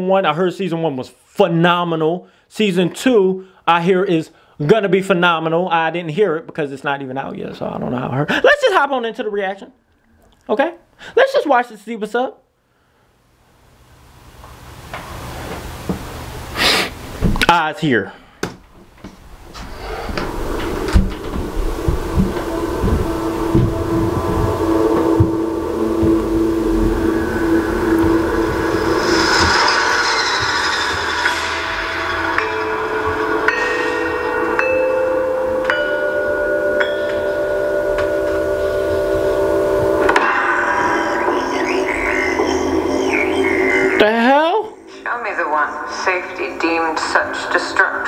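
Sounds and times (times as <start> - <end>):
held low tone: 19.6 - 45.4
low knocks: 20.1 - 29.7
orchestral trailer music: 21.1 - 37.3, 38.9 - 47.6.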